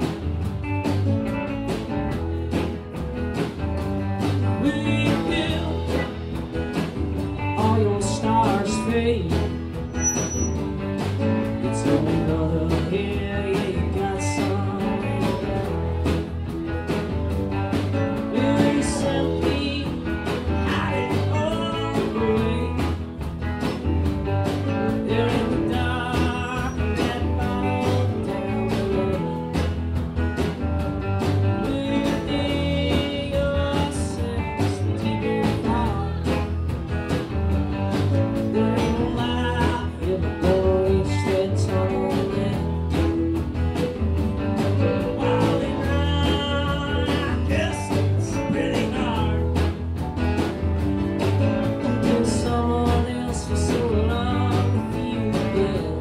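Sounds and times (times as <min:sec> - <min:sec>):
live country blues rock band: 0:00.0 - 0:56.0.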